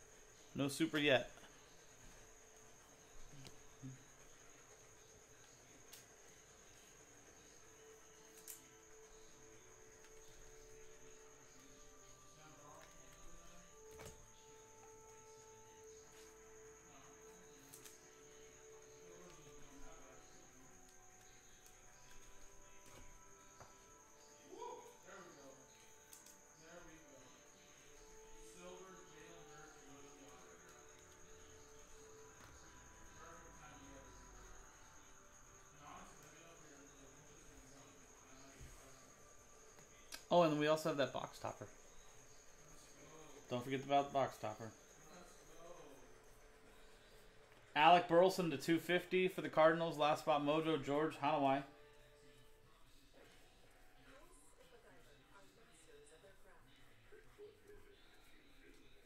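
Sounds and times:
high-pitched whine: 0:00.0 - 0:47.2
faint music with singing voice: 0:00.0 - 0:59.0.

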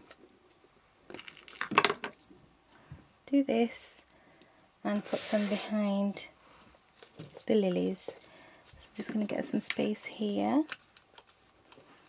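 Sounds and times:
paper rustling and crinkling: 0:04.9 - 0:12.0.

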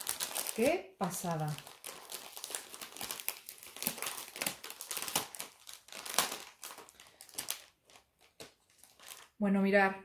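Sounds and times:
packaging crinkling: 0:00.0 - 0:09.4.

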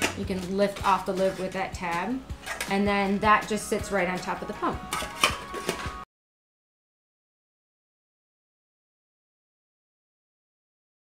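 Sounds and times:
metal lid clinking on bowl: 0:04.9 - 0:05.9.

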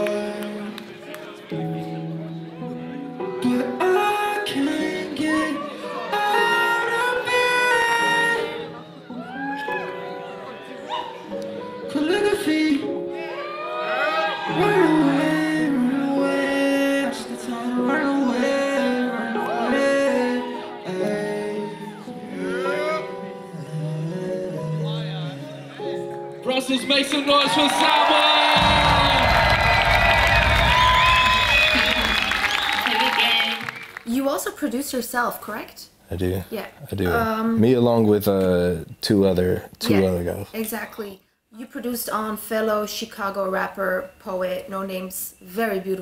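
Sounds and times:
crowd cheering and screaming: 0:08.8 - 0:11.7, 0:13.1 - 0:16.0, 0:18.8 - 0:22.5, 0:26.9 - 0:34.0
person singing with held notes: 0:14.5 - 0:25.8
loud music: 0:25.6 - 0:32.4.

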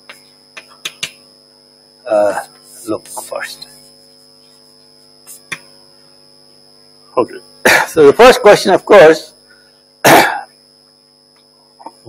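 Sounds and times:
chalk tapping on board: 0:00.0 - 0:01.2
mains hum: 0:00.0 - 0:12.0.

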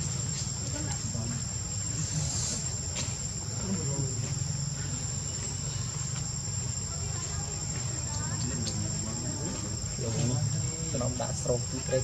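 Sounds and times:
high-pitched insect chorus: 0:00.0 - 0:12.0.

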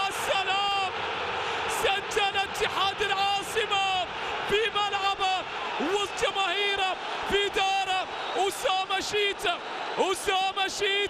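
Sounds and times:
man commentating excitedly: 0:00.0 - 0:01.0, 0:01.6 - 0:11.0
stadium crowd noise: 0:00.0 - 0:11.0.

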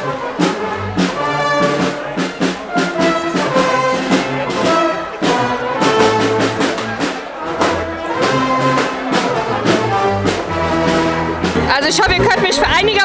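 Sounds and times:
brass band playing: 0:00.0 - 0:13.0
crowd chatter: 0:00.0 - 0:13.0.

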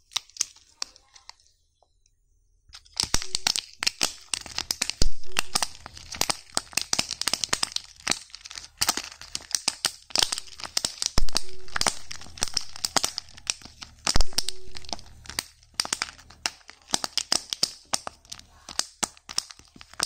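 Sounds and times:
plastic shells clicking together: 0:00.0 - 0:01.4, 0:02.7 - 0:20.0
wrappers crinkling: 0:00.0 - 0:01.5, 0:02.8 - 0:20.0.

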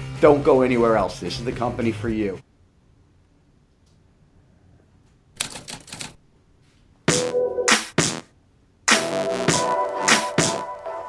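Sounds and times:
typewriter-like mechanical clicks: 0:05.4 - 0:06.2.

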